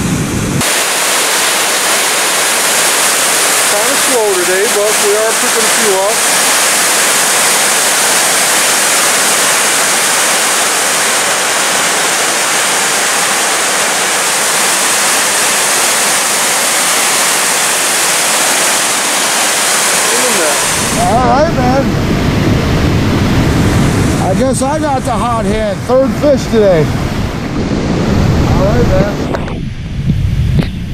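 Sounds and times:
water rushing over spillway: 0.0s - 29.4s.

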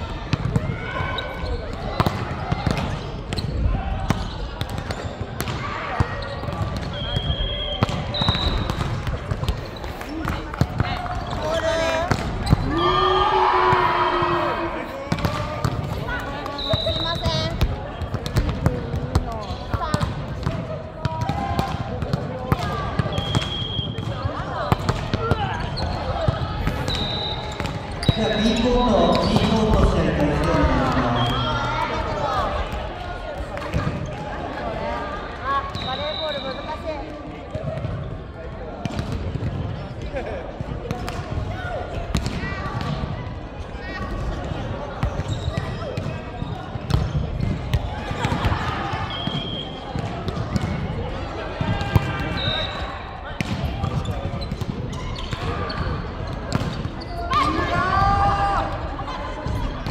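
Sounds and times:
players shouting: 10.8s - 16.8s, 22.6s - 33.8s, 57.2s - 59.9s
shoes squeaking on floor: 12.4s - 12.7s, 26.8s - 29.6s, 45.2s - 47.2s.

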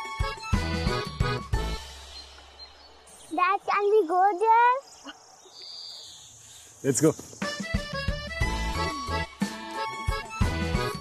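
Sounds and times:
child speaking: 3.3s - 5.1s
low music: 7.5s - 11.0s.

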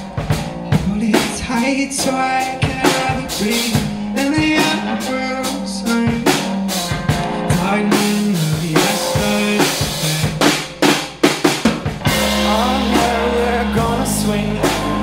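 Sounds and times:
drum kit hits: 0.0s - 5.2s, 5.9s - 15.0s
live band playing: 0.0s - 15.0s.

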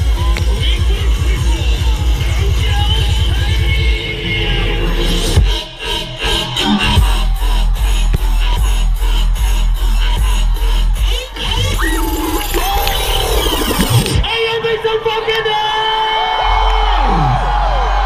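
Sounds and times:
loud dubstep over sound system: 0.0s - 14.6s.

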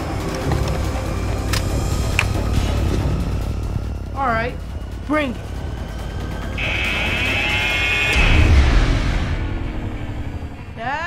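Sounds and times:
sudden hit with deep rumble: 8.2s - 10.8s.

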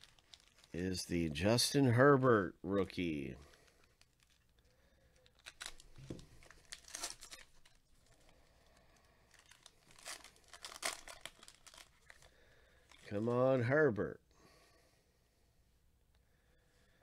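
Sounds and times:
foil wrapper crinkling and tearing: 0.0s - 0.9s, 3.4s - 13.1s.

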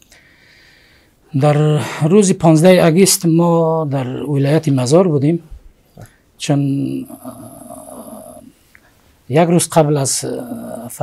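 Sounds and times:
man's rough hesitation sound: 6.6s - 8.5s.

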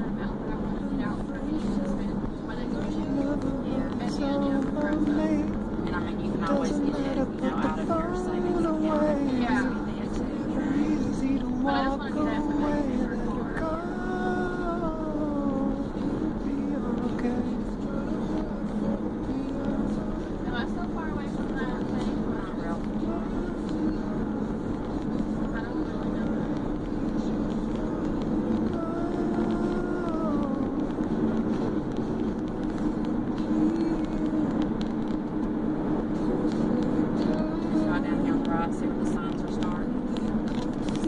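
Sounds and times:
car cabin road and engine noise: 0.0s - 41.0s.

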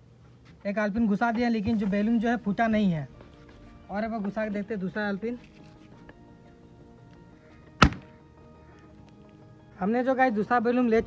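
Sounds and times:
soft background music: 0.0s - 11.0s
balloon popping: 7.8s - 8.1s.

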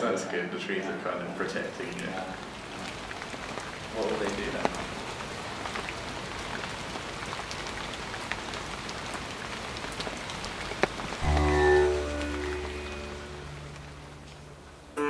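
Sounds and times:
rain pattering on leaves: 0.0s - 15.0s
low drone with plucked strings: 11.2s - 15.0s.

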